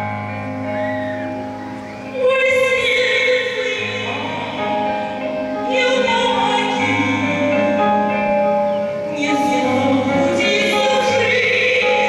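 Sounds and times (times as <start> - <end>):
musical accompaniment: 0.0 - 12.0
woman singing into a microphone: 2.1 - 12.0.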